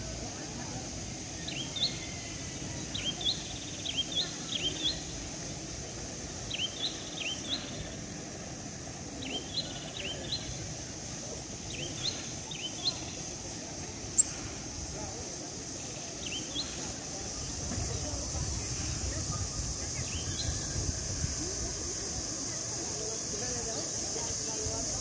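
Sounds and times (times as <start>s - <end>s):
low outdoor background noise: 0.0s - 25.0s
steady high hiss: 0.0s - 25.0s
small bird chirping: 1.4s - 5.5s, 6.4s - 8.1s, 9.1s - 10.6s, 11.7s - 13.3s, 14.1s - 14.4s, 15.8s - 16.9s.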